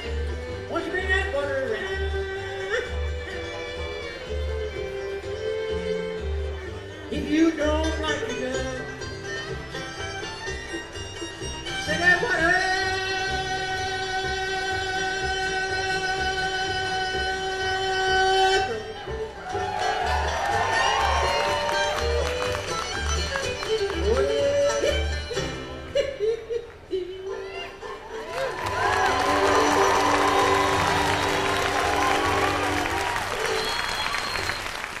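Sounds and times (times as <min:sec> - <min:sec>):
bluegrass band holding a long note: 0:00.0 - 0:26.0, 0:27.3 - 0:35.0
audience applauding and cheering: 0:19.0 - 0:24.8, 0:27.8 - 0:35.0.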